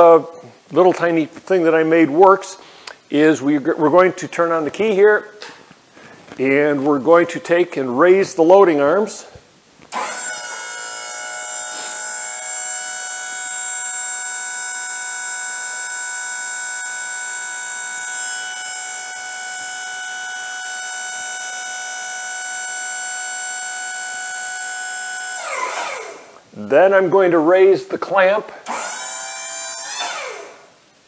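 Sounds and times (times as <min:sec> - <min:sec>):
hydraulic pump whine: 0:09.9 - 0:26.4, 0:28.6 - 0:30.7.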